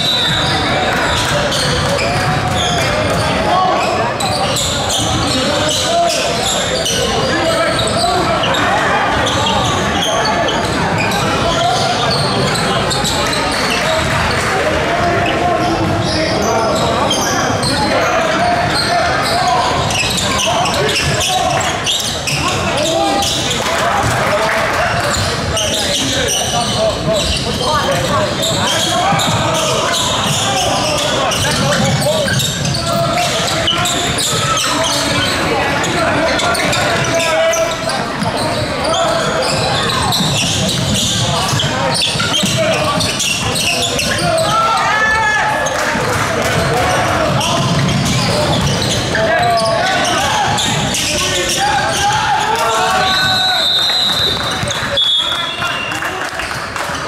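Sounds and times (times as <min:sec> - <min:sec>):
many overlapping voices: 0:00.0 - 0:57.0
ball bouncing on court: 0:40.1 - 0:43.4.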